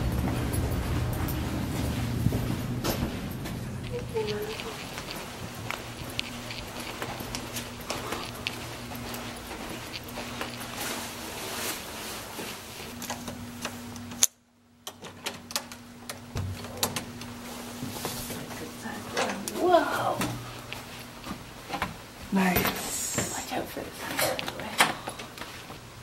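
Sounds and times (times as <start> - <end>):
footsteps: 0.0 - 13.0, 17.4 - 25.8
rustling of jackets and bags: 0.0 - 13.6
steady low hum: 0.0 - 26.0.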